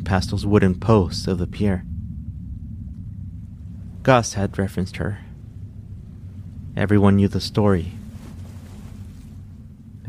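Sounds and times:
low rumbling ambient drone: 0.0 - 10.0.

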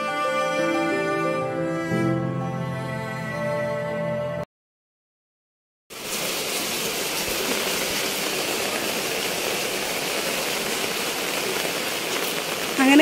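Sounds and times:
rain falling on tiles: 5.9 - 13.0.

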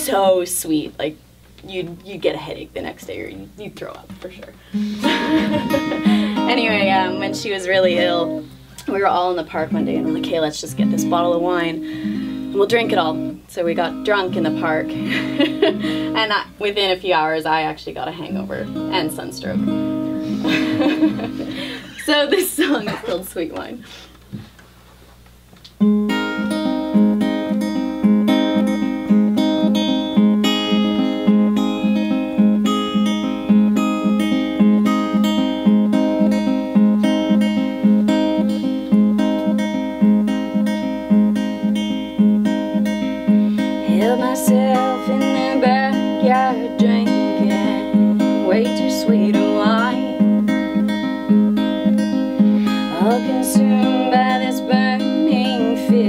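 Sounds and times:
acoustic guitar picking: 2.2 - 24.6, 25.7 - 56.0
woman singing: 5.1 - 11.8, 43.8 - 50.2, 52.7 - 56.0.

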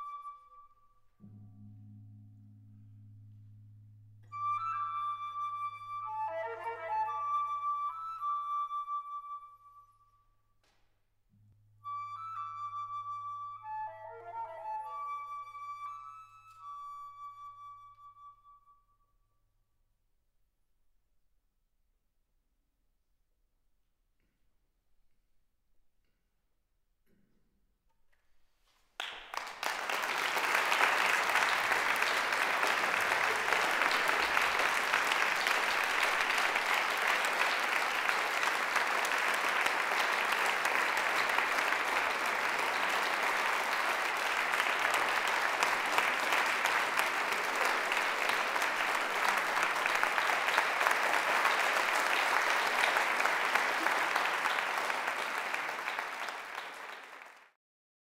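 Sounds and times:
audience applauding: 6.1 - 8.0, 29.0 - 57.6.

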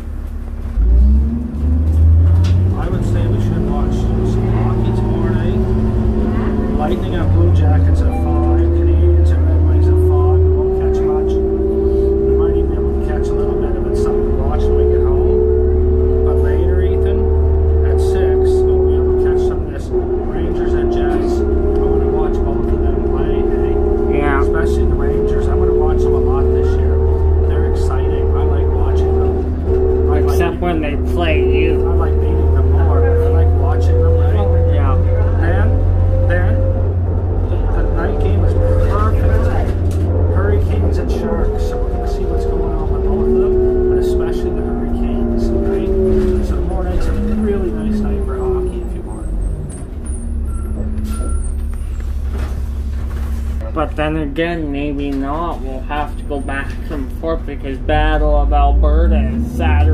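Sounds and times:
bus engine rumble: 0.0 - 59.9
whining drone: 0.0 - 59.9.

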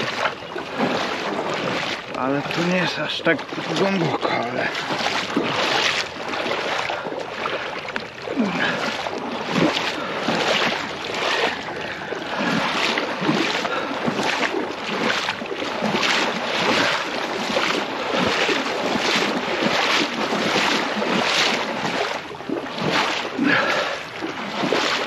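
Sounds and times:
scooter wheel splashing through water: 0.0 - 25.0.

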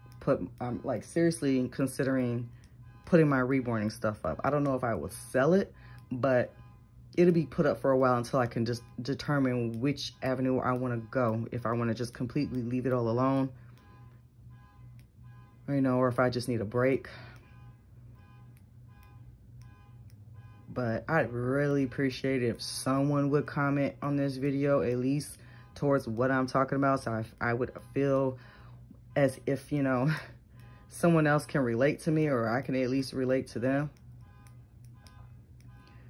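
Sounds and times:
car alarm beeping: 0.0 - 36.0
low steady hum: 0.0 - 36.0.

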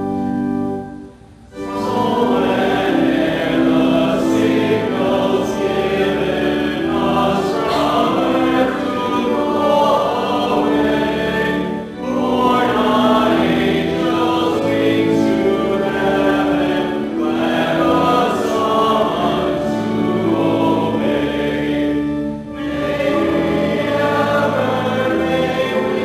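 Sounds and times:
organ accompaniment: 0.0 - 26.0
group singing a hymn: 1.5 - 26.0.

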